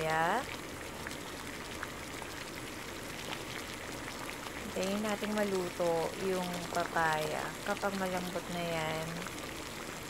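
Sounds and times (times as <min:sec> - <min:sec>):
broth boiling with pops: 0:00.0 - 0:10.0.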